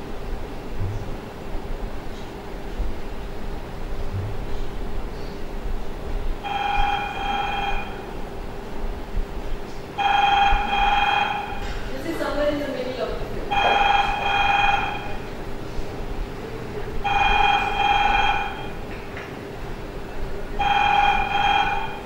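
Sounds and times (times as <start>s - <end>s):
steady hum: 0.0s - 22.0s
telephone ringing: 6.4s - 8.1s, 10.0s - 11.6s, 13.5s - 15.3s, 17.0s - 18.8s, 20.6s - 22.0s.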